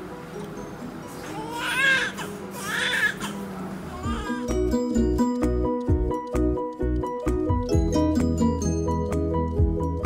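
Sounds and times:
soft background music: 0:00.0 - 0:10.0
newborn baby crying: 0:01.2 - 0:04.6.

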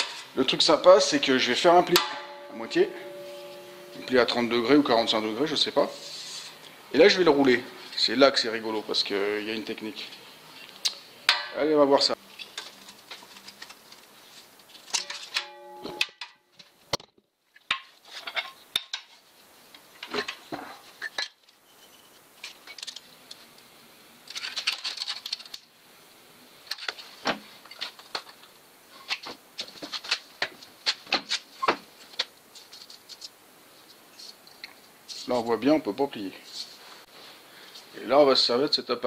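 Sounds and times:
metal scraping: 0:00.0 - 0:06.6, 0:14.9 - 0:16.2
metallic ringing tone: 0:00.9 - 0:06.3, 0:15.0 - 0:16.3
metal strip clinking and rattling: 0:24.3 - 0:25.6.

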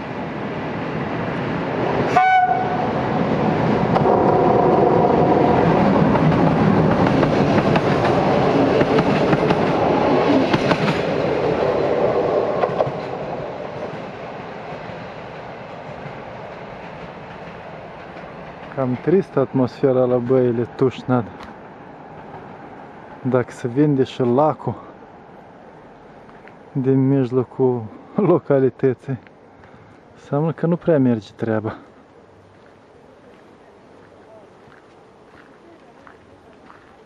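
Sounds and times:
train rumble and wheel clatter: 0:00.0 - 0:37.0
train horn blast: 0:02.1 - 0:03.0.

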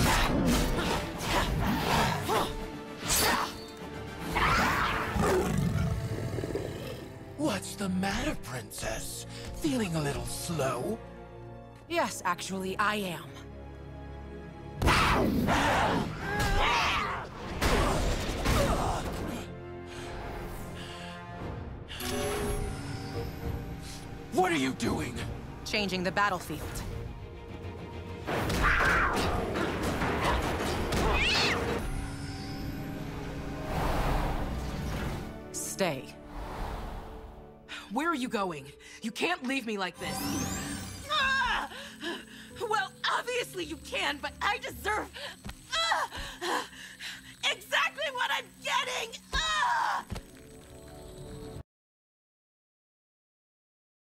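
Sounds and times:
sustained music score: 0:00.0 - 0:16.6, 0:17.3 - 0:51.6
low big cat growl: 0:05.0 - 0:07.2.

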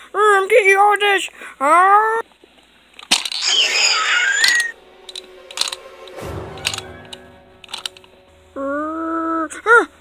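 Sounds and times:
dinosaur screech: 0:03.3 - 0:04.8
low rumble: 0:04.7 - 0:10.0.

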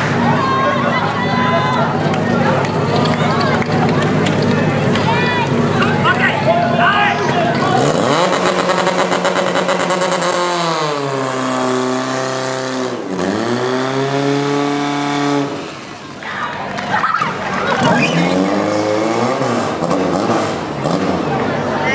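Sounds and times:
spectators shouting: 0:00.0 - 0:07.9, 0:15.9 - 0:19.5.

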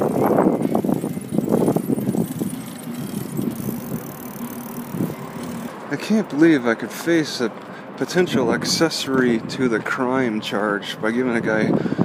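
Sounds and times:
wind noise: 0:00.0 - 0:05.8, 0:08.0 - 0:12.0
bicycle tyres rattling on pavement: 0:00.0 - 0:11.2.

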